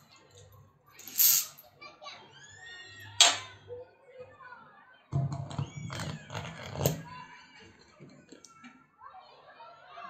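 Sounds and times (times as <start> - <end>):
children playing: 0.0 - 10.0.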